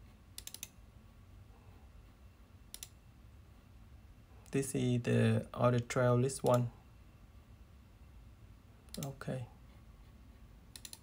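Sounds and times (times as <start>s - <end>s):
computer mouse clicking: 0.3s - 0.8s, 2.7s - 3.0s, 8.9s - 9.2s, 10.7s - 11.0s.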